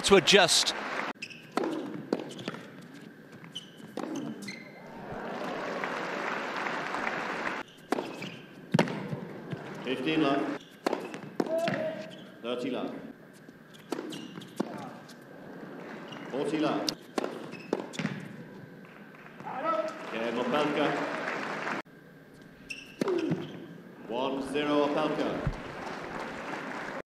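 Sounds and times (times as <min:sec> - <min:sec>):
crowd noise: 0:00.0 - 0:01.1, 0:04.7 - 0:07.6, 0:24.8 - 0:27.0
tennis ball bouncing on court: 0:01.3 - 0:04.6, 0:07.8 - 0:09.7, 0:10.8 - 0:12.0, 0:13.8 - 0:15.0, 0:16.9 - 0:18.4
racket striking ball: 0:01.5 - 0:02.7, 0:07.8 - 0:09.3, 0:10.8 - 0:12.0, 0:17.0 - 0:18.3.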